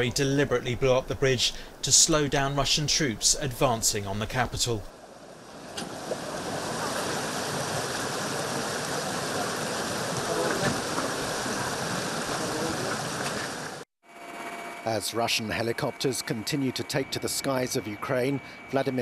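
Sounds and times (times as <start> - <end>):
rushing outdoor noise: 0.0 - 13.8
faint voices: 9.0 - 13.5
faint steady hum: 14.2 - 19.0.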